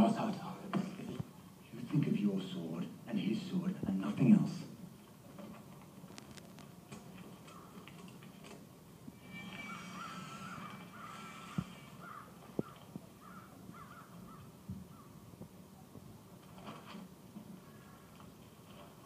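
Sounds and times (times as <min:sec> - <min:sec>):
faint film soundtrack: 0:00.0 - 0:19.0.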